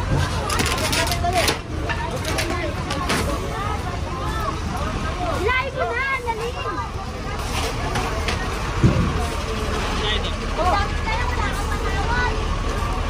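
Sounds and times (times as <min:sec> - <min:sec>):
crowd voices: 0:00.0 - 0:13.0
steady low street rumble: 0:00.0 - 0:13.0.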